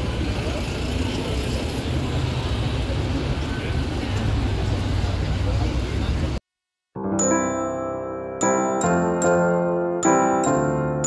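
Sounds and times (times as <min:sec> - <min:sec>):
crowd chatter: 0:00.0 - 0:06.4
road traffic rumble: 0:00.0 - 0:06.4.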